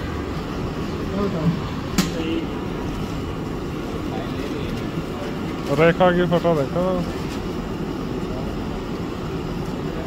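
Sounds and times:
steady outdoor rumble: 0.0 - 10.0.

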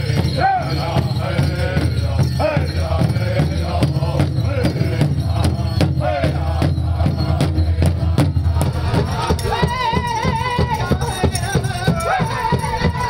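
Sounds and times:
big drum beating: 0.0 - 13.0
voices singing: 0.0 - 13.0.

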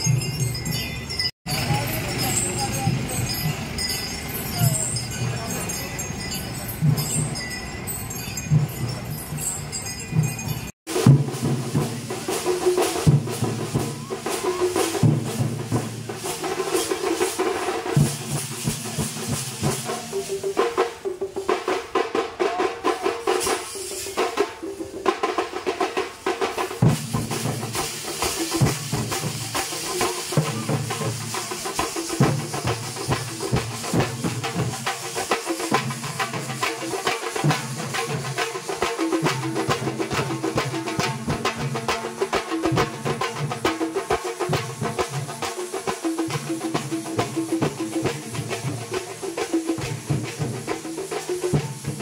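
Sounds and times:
drums beating fast rhythm: 0.0 - 52.0
crowd noise: 1.0 - 10.1, 11.0 - 44.8.

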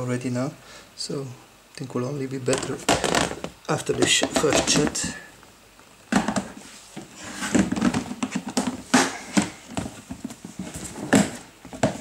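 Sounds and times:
plastic tub knocking on wood: 2.6 - 5.2.

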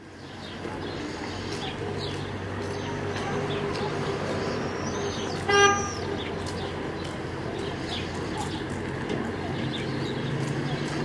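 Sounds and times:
street hubbub: 0.0 - 11.0
vehicle horn toot: 5.5 - 6.0.

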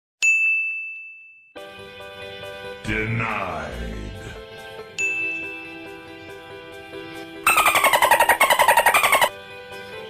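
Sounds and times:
bright ding chime: 0.2 - 1.5, 5.0 - 5.6
music with held notes: 4.3 - 10.0.

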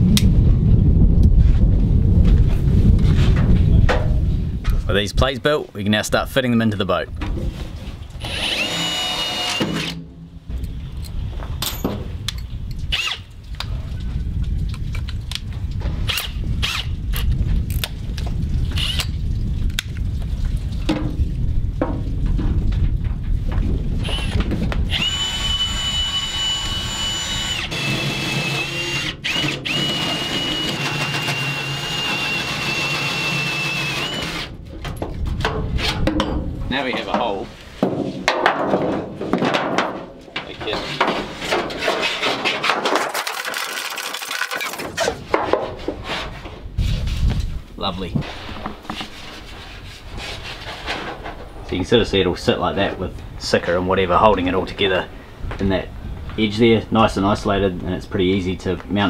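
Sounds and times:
power tool cutting metal: 8.2 - 10.0, 24.1 - 34.5.

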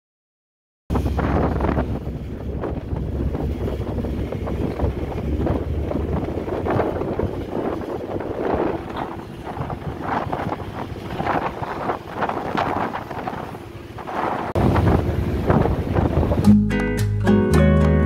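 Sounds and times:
choppy water rushing along hull: 0.9 - 16.6
wind gusting on microphone: 0.9 - 16.6.

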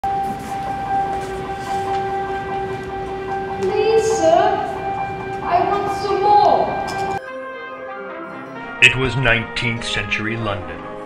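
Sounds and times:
steady held chord tone: 0.0 - 8.9
rising pitched sound: 0.1 - 7.2.

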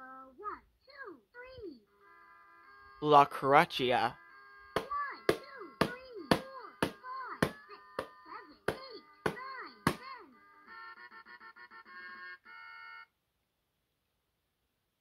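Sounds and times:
electronic toy melody: 2.0 - 13.1.

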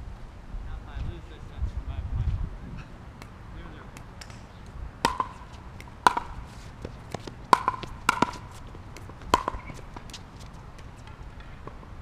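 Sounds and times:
paddle hitting plastic ball: 4.0 - 10.3.

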